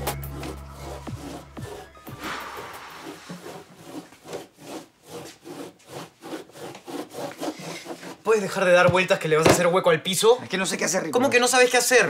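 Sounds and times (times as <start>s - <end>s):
hand rubbing a surfboard: 0.2s - 8.2s.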